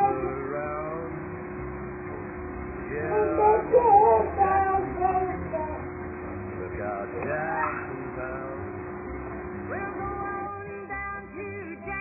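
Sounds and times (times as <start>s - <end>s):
baby cooing and babbling: 3.1s - 5.8s.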